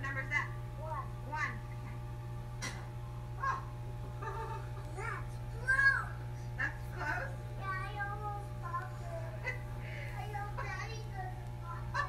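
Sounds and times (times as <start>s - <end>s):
aquarium air pump humming: 0.0s - 12.0s.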